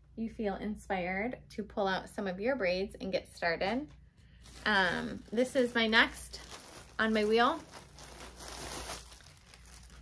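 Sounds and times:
plastic bag crinkling: 0:04.4 - 0:10.0.

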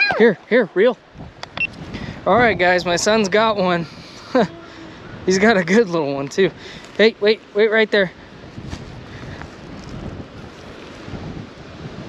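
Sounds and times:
wind blowing on microphone: 0:00.0 - 0:12.0.

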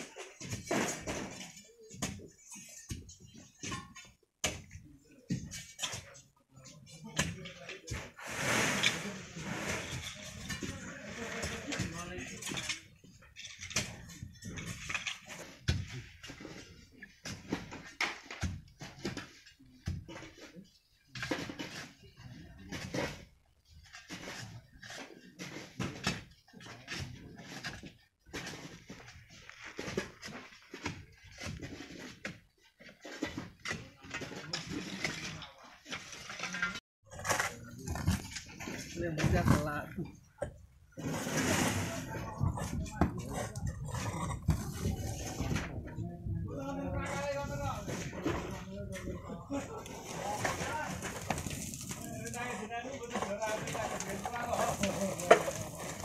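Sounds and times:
sand and gravel scraping and falling: 0:08.2 - 0:10.1, 0:50.0 - 0:52.6, 0:53.2 - 0:56.0.

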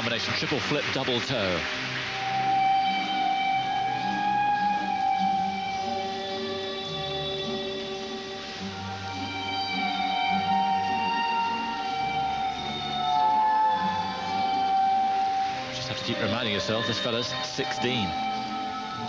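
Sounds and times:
slow music of long notes: 0:00.0 - 0:19.0.

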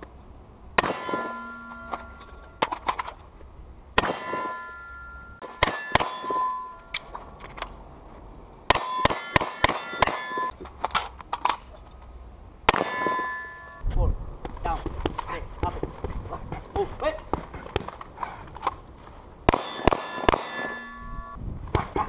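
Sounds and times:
gunshots: 0:00.8 - 0:02.1, 0:04.0 - 0:04.6, 0:05.4 - 0:06.5, 0:08.7 - 0:10.5, 0:12.7 - 0:13.3, 0:19.5 - 0:21.0
steel plate ringing: 0:00.8 - 0:02.6, 0:04.0 - 0:07.1, 0:08.7 - 0:10.5, 0:12.7 - 0:13.8, 0:19.5 - 0:21.4.

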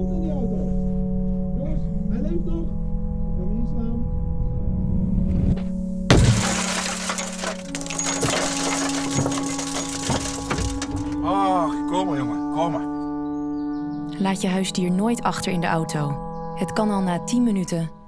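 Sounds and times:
car window smashing: 0:06.1 - 0:11.2
glass crumbling and falling: 0:06.1 - 0:11.2
background music: 0:09.8 - 0:18.0.

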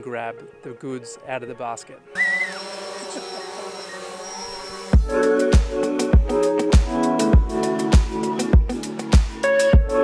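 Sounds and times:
drone propellers buzzing: 0:02.2 - 0:06.1.

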